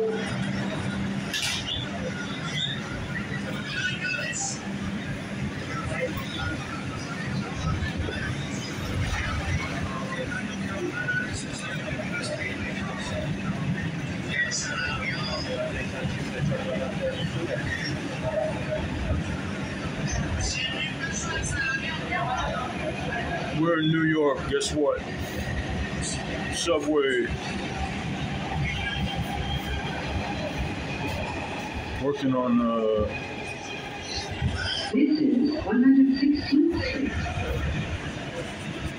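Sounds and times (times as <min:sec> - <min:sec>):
faint voices: 0:00.0 - 0:38.9
subway train rumbling: 0:00.0 - 0:38.9.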